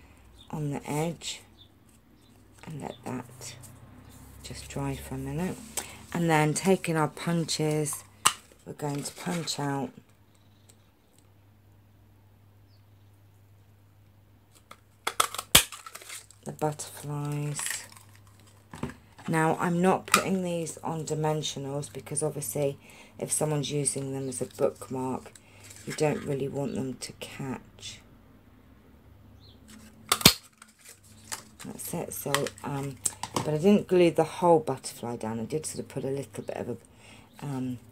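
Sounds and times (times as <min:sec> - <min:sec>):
paper rustle: 0:15.7 - 0:16.4, 0:29.7 - 0:31.7.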